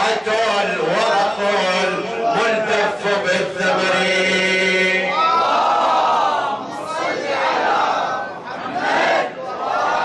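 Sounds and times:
crowd of men calling out: 5.0 - 10.0.

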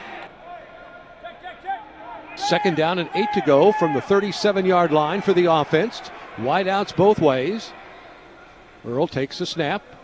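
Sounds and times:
raised shouts: 2.0 - 6.9.

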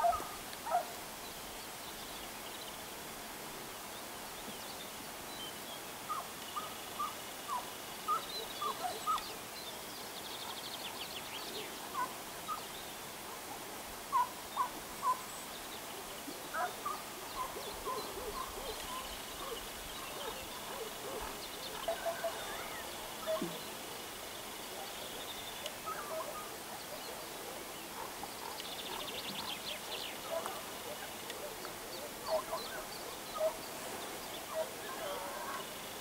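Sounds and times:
hounds yelping: 0.0 - 0.9, 16.6 - 19.6, 20.2 - 23.5, 25.9 - 26.5, 32.2 - 32.8, 33.4 - 33.6, 34.5 - 35.6.

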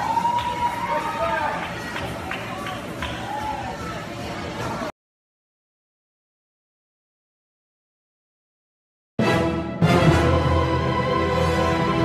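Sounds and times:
music: 9.2 - 12.0.

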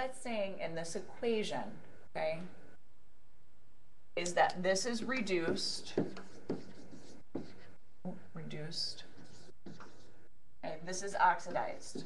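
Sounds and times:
pen scratching on paper: 5.3 - 7.8, 8.8 - 10.2, 11.3 - 12.0.

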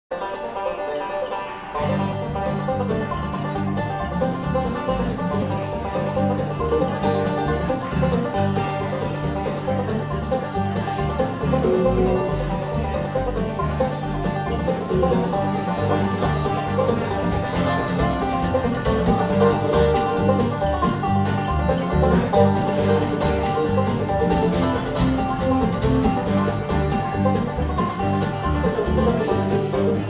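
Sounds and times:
acoustic guitar: 0.1 - 30.0
banjo picking: 0.1 - 30.0
mandolin: 0.1 - 30.0
upright bass notes: 1.8 - 30.0.

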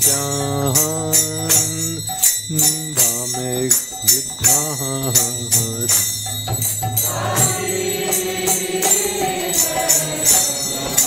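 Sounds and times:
small hand cymbals ringing: 0.0 - 11.0
group of voices chanting: 7.0 - 11.0.

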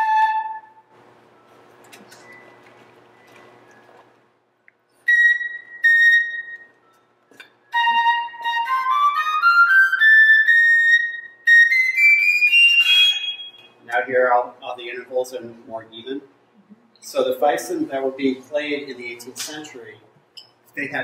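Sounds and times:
fife playing high notes: 7.7 - 13.9
man speaking: 13.8 - 16.3, 17.0 - 20.1, 20.8 - 21.0.

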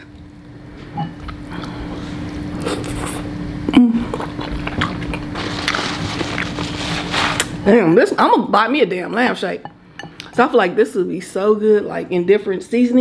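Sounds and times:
chewing and wet mouth sounds: 0.0 - 3.3, 4.0 - 6.7
faint steady hum: 0.0 - 13.0
person humming mm: 2.6 - 4.4.

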